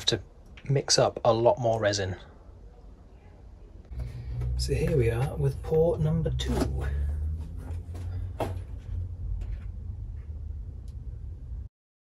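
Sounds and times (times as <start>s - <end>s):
low steady hum: 0.0s - 11.7s.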